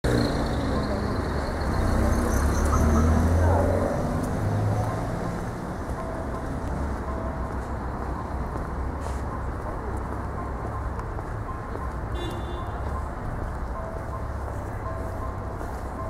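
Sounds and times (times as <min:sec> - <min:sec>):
vehicle engine rumble: 0:00.0 - 0:16.0.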